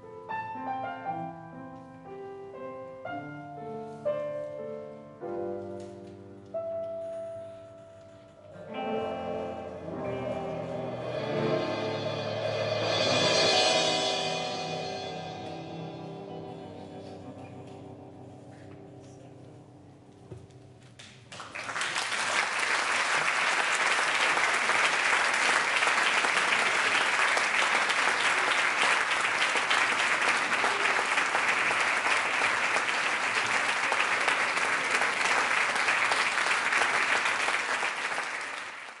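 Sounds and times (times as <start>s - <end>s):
audience applauding: 21.0s - 39.0s.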